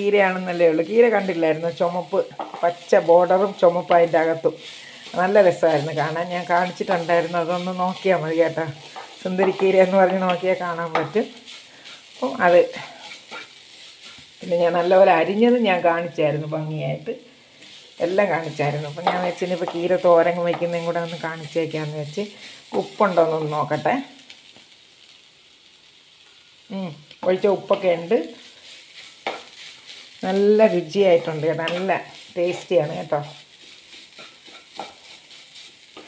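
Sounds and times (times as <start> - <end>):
light sizzle: 0.0 - 36.0
spatula scraping frying pan: 0.2 - 15.6, 17.5 - 23.7, 27.7 - 36.0.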